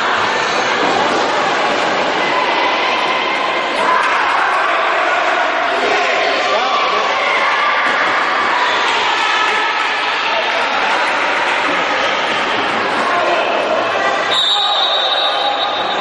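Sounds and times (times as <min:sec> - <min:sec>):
referee's whistle: 0:14.3 - 0:16.0.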